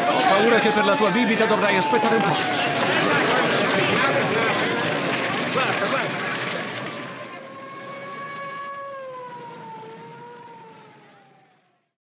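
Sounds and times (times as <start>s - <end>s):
siren sliding down in pitch: 0.0s - 11.8s.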